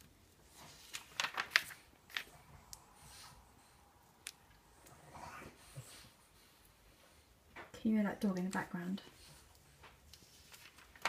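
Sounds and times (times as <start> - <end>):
magazine pages rustling: 0.4 - 2.4, 9.8 - 11.0
paper click: 0.9 - 2.3.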